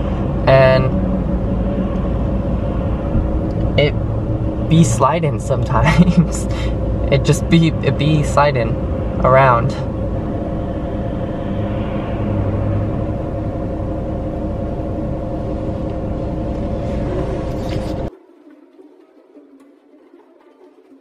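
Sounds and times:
car cabin road and engine noise: 0.0 - 18.2.

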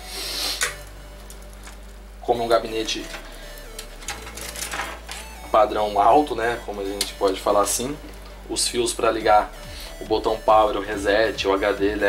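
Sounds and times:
low steady hum: 0.0 - 12.0
cables rustling against case: 2.6 - 5.4.

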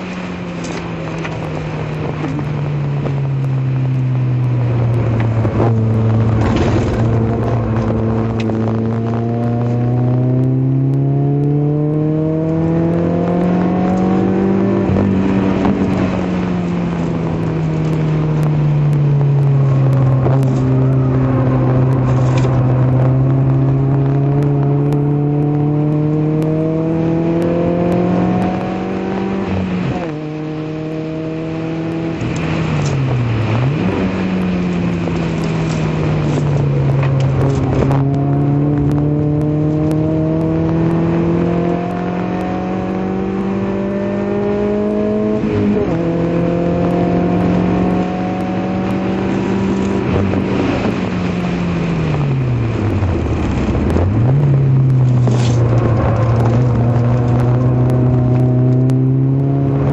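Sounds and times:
car engine at full throttle: 0.0 - 59.9.

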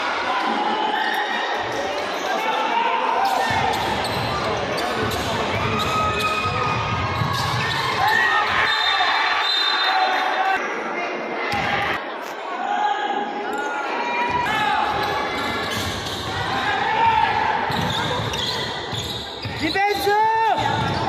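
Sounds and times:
voices echoing in gym: 0.0 - 21.0
sneakers squeaking: 3.2 - 9.9, 14.3 - 16.6, 17.6 - 21.0
basketball bouncing on court: 17.7 - 19.8, 20.6 - 21.0.

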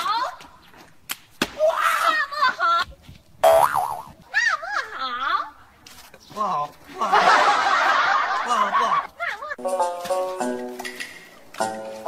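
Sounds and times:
cartoon boing sound effect: 3.4 - 4.1.

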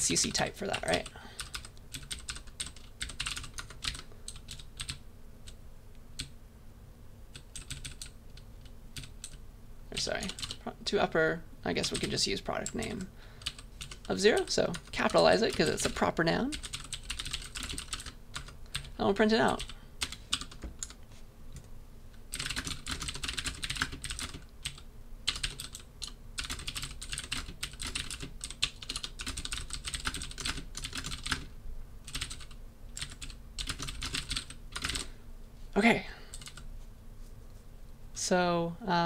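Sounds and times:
typing on computer keyboard: 1.0 - 5.0, 7.3 - 9.4, 10.0 - 10.6, 13.4 - 14.2, 15.5 - 21.0, 22.3 - 31.5, 32.1 - 35.1, 36.3 - 36.6.

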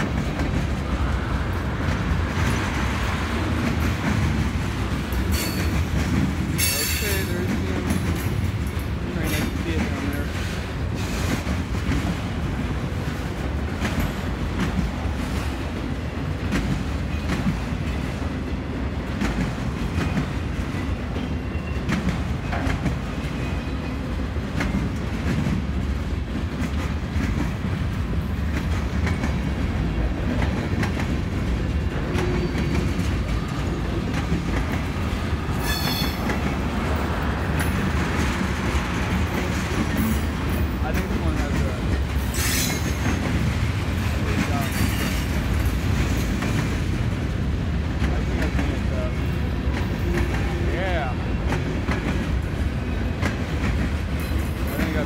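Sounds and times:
train wheels rumbling on rails: 0.0 - 55.0.

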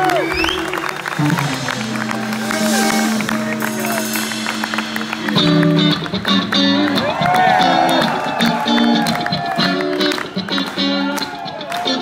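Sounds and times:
live band with electric guitars: 0.0 - 12.0.

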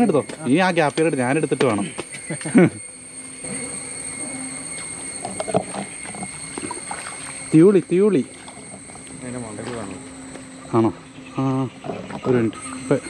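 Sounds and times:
high-pitched insect drone: 0.0 - 13.0.

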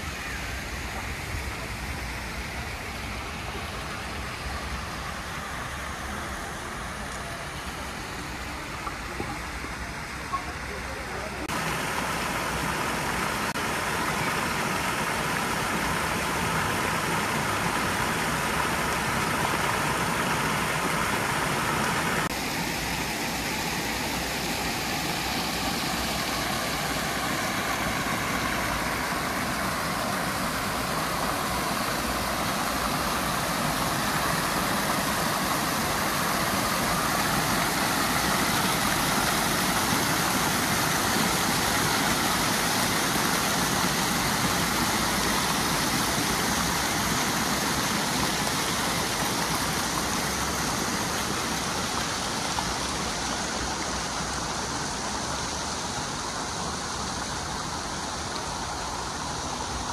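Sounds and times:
fountain jets splashing into pool: 0.0 - 59.9.

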